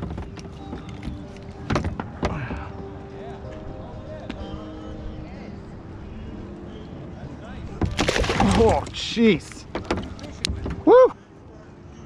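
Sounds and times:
murmur of distant voices: 0.0s - 12.0s
fish splashing into water: 7.8s - 9.0s.

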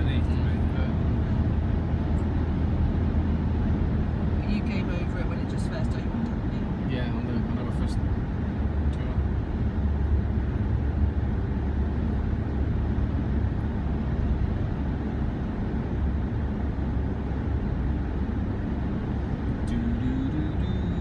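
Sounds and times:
car cabin road rumble: 0.0s - 21.0s.

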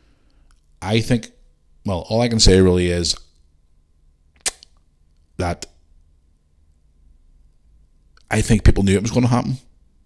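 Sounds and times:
man speaking: 0.8s - 3.3s, 5.4s - 5.8s, 8.2s - 9.7s
sharp click: 4.4s - 4.8s.

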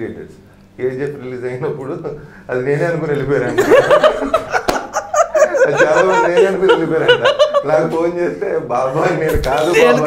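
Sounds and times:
laughter: 3.4s - 8.4s
man talking animatedly: 8.9s - 10.0s.

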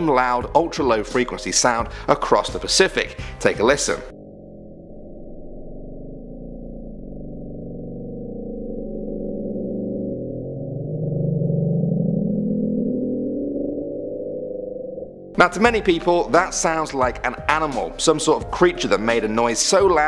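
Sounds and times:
deep underwater drone: 4.0s - 15.4s.

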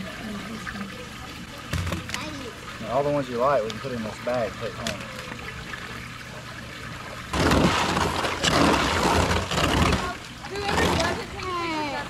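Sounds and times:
water splashing and sloshing: 0.0s - 12.0s.

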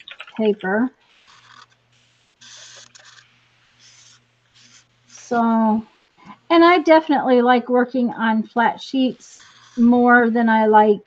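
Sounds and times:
pen scratching on paper: 1.0s - 5.3s, 9.0s - 10.2s.

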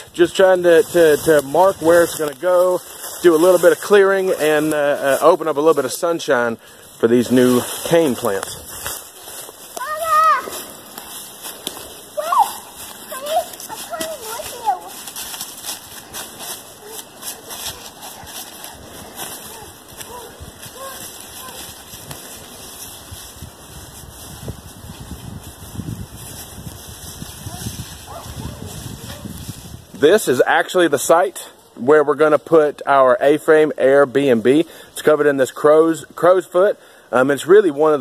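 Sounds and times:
footsteps crunching dry leaves: 0.0s - 30.4s.

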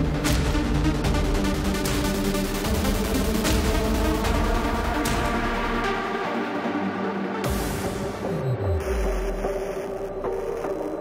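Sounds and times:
hardstyle electronic music: 0.0s - 11.0s.

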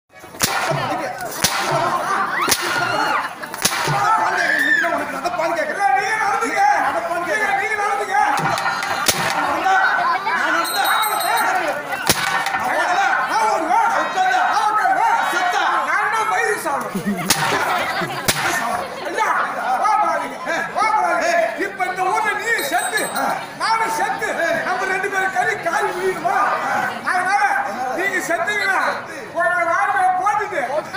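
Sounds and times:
voices: 0.1s - 30.9s
sharp cracking blows: 0.4s - 2.8s, 3.5s - 4.1s, 18.2s - 18.6s
sharp smack of stage blow: 3.6s - 4.1s.

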